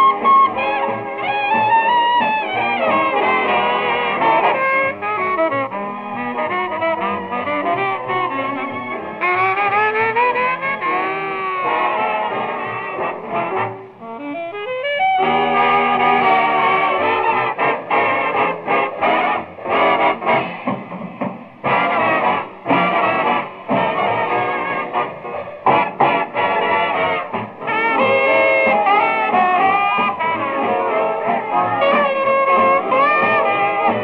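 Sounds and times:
swing big band playing: 0.0s - 34.0s
punchy brass hits: 16.0s - 34.0s.

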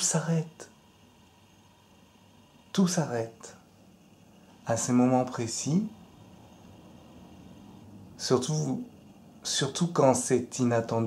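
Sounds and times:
faint room tone hiss: 0.0s - 11.0s.

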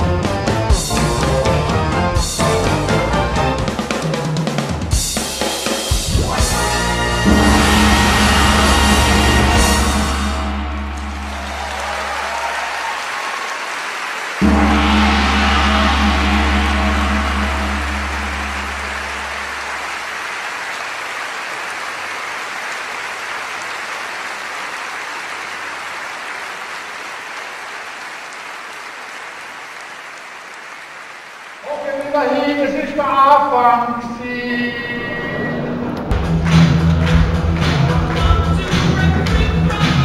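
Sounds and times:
brass band chord: 0.0s - 4.2s, 6.1s - 12.2s, 14.4s - 20.3s
audience applause: 6.6s - 33.1s, 36.1s - 40.0s.

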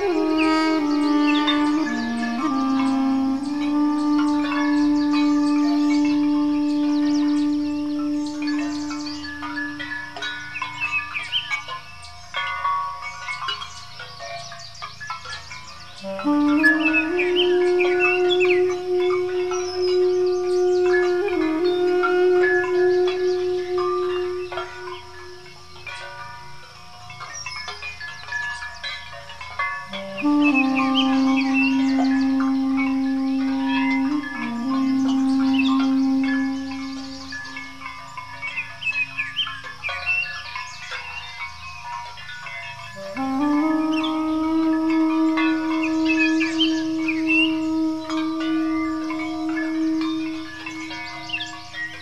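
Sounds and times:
duduk playing long notes: 0.0s - 10.2s, 16.0s - 25.8s, 29.9s - 37.8s, 43.0s - 50.9s
birds chirping: 0.0s - 52.0s.

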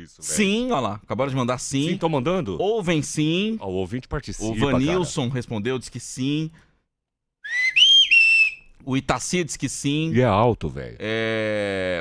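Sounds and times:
high three-note whistle: 7.4s - 8.6s.

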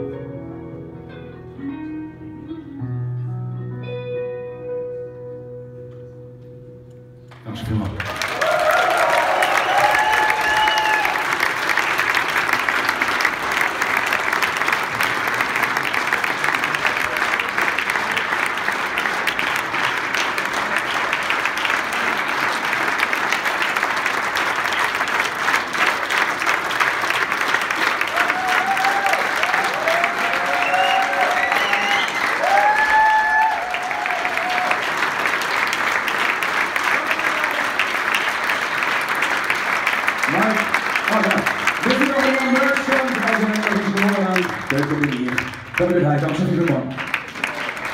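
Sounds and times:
audience clapping: 7.3s - 47.9s.

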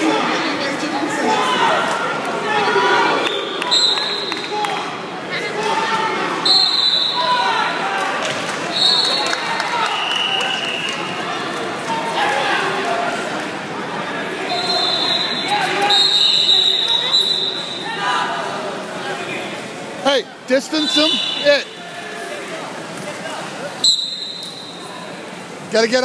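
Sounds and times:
voices echoing in a gymnasium: 0.0s - 26.0s.

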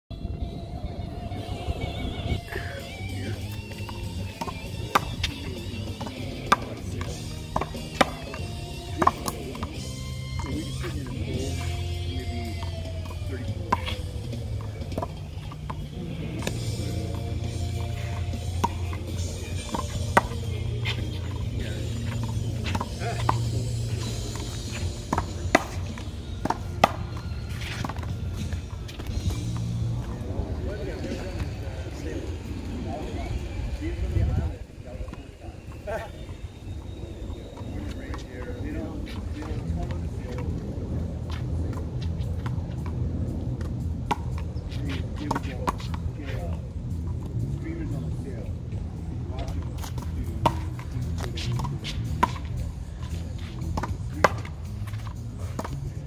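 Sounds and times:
music with vocals: 0.1s - 56.0s.

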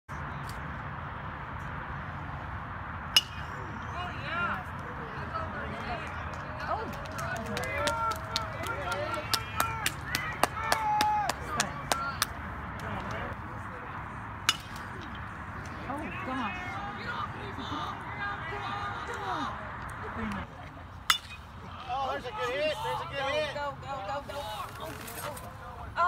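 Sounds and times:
people shouting calls: 3.5s - 12.4s, 15.6s - 19.7s, 21.6s - 26.0s
sharp claps: 6.0s - 13.2s.

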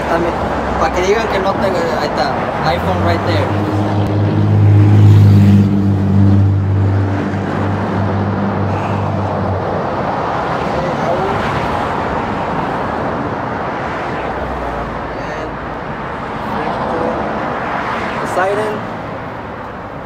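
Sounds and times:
road noise rushing: 0.0s - 20.0s
vehicle engine hum: 0.0s - 20.0s.

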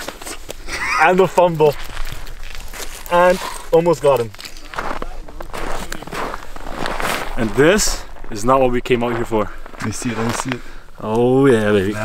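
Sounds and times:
boots crunching on snowy ice: 1.6s - 10.5s.

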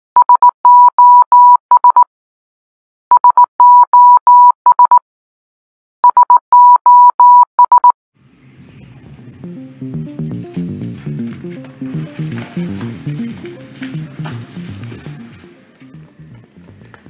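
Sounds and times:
morse code beeps: 0.2s - 2.1s, 3.1s - 5.0s, 6.0s - 8.0s, 9.4s - 16.1s.

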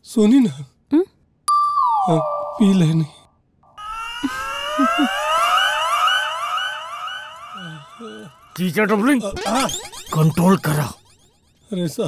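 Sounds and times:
warbling siren-like tone: 3.6s - 11.7s.

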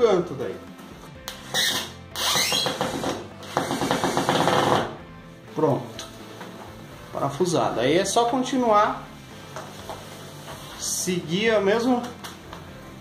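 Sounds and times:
cordless drill driving screw into wood: 1.3s - 5.0s.

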